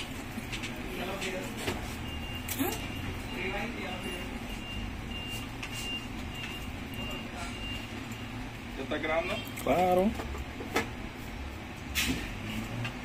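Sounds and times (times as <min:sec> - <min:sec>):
high electronic beeps: 0:02.0 - 0:08.4.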